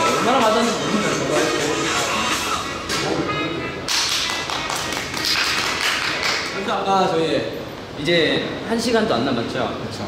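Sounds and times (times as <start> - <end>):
upbeat pop music: 0.0 - 3.3
people clapping: 3.8 - 6.6.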